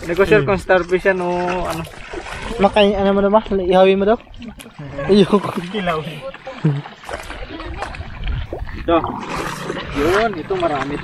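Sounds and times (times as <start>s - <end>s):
rock rumbling in water: 7.0s - 11.0s
people talking: 9.9s - 11.0s.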